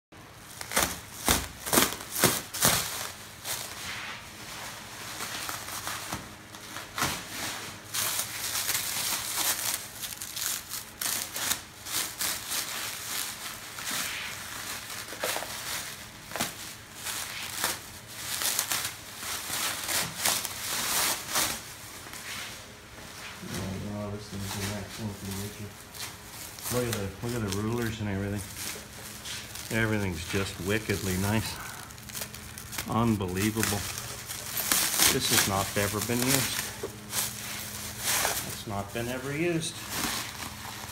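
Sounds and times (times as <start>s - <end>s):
plastic wrapping crinkling: 0.3s - 22.8s, 23.4s - 40.9s
sharp loud plastic crackles: 0.4s - 3.2s.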